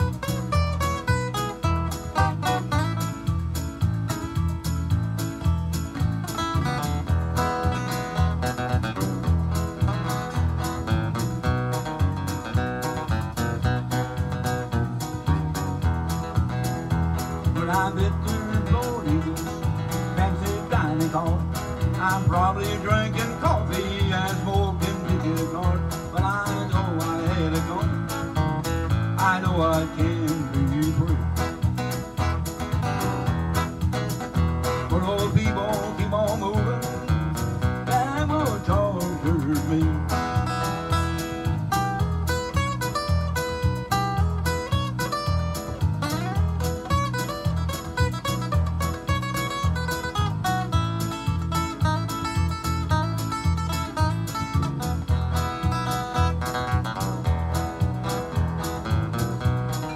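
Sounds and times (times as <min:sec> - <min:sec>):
acoustic guitar strumming: 0:00.0 - 0:59.9
bending guitar lead melody: 0:00.0 - 0:59.9.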